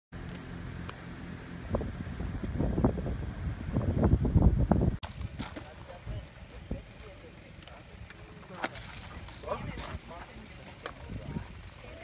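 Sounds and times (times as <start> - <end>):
vehicle engine humming: 0.1 - 12.0
wind buffeting microphone: 1.6 - 5.4, 10.9 - 11.7.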